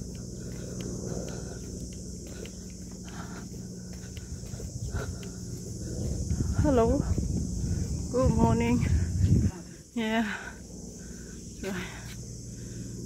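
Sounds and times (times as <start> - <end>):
footsteps on paved path: 0.0 - 10.5, 11.6 - 12.7
wind rumble on microphone: 0.0 - 12.4
high-pitched insect drone: 0.0 - 13.0.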